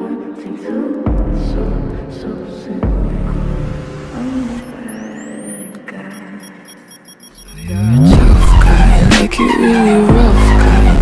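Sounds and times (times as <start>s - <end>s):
rising high whistles: 4.5s - 8.0s.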